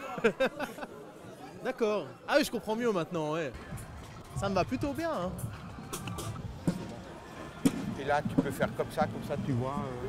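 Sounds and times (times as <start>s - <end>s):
outdoor voices: 0.0s - 10.0s.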